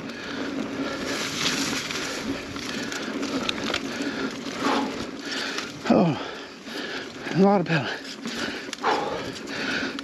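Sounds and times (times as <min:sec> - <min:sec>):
mountain bike rolling on dirt: 0:00.0 - 0:10.0.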